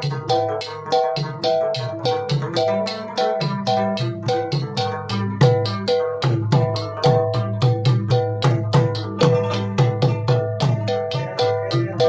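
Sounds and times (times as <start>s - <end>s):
rabab plucked melody: 0.0s - 12.0s.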